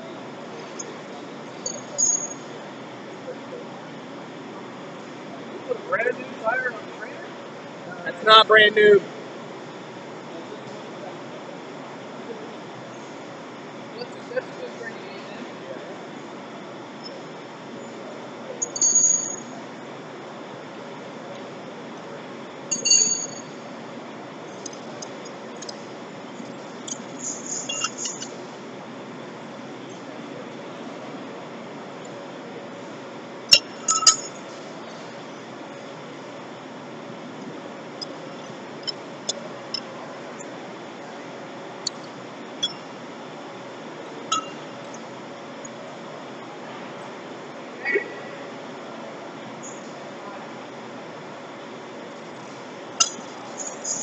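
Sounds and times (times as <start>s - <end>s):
low shop background noise: 0.0s - 54.0s
sharp metallic clinks: 1.6s - 2.5s, 18.6s - 19.5s, 22.7s - 23.5s, 26.9s - 28.3s, 33.5s - 34.4s.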